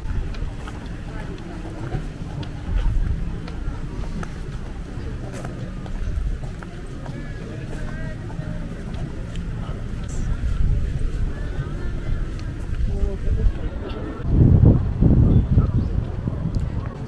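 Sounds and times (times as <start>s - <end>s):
footstep clicks: 0.0s - 10.8s
passers-by voices: 0.0s - 17.0s.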